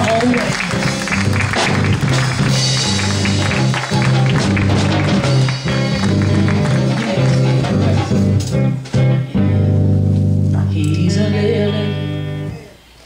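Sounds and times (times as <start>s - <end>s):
bass line: 0.0s - 12.8s
church band music: 0.0s - 12.9s
guitar: 0.0s - 13.0s.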